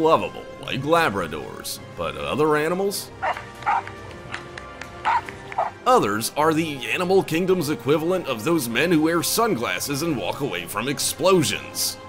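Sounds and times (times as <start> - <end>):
background music: 0.0 - 12.0
dog barking: 3.2 - 3.9, 5.0 - 5.8.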